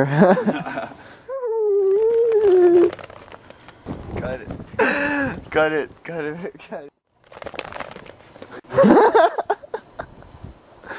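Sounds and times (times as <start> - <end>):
crackling crinkling noise: 1.8 - 4.1, 7.1 - 8.6.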